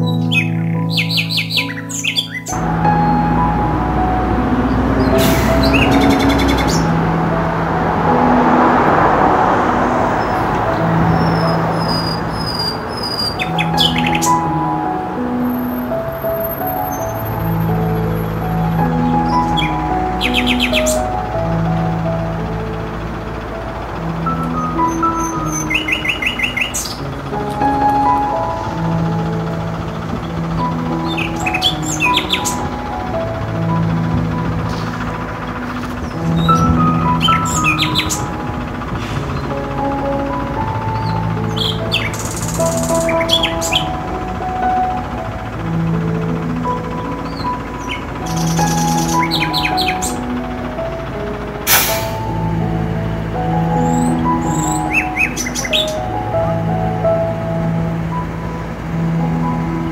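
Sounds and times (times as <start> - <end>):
birds chirping: 0.0 - 7.4, 8.2 - 52.6, 53.6 - 56.9
slow calm instrumental music: 0.0 - 59.9.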